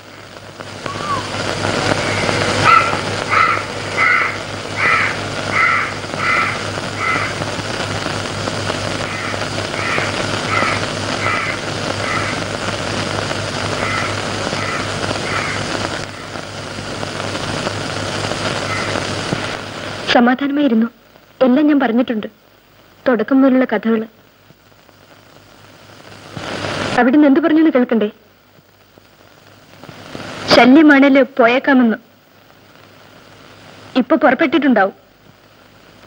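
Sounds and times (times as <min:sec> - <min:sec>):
steady background hiss: 0:00.0 - 0:36.0
crows cawing: 0:01.9 - 0:07.5, 0:09.0 - 0:12.6, 0:13.7 - 0:16.5, 0:18.6 - 0:19.5.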